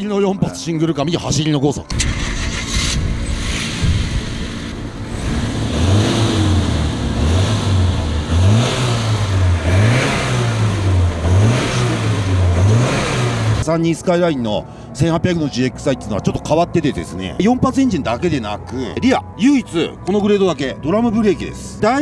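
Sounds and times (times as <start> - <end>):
car engine starting and revving: 1.9 - 13.7.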